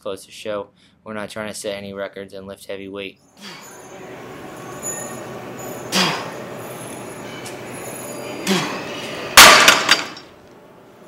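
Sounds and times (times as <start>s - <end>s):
cable machine weights clinking: 3.8s - 10.3s
person grunting: 8.4s - 8.9s
loud metallic clash: 9.3s - 10.4s.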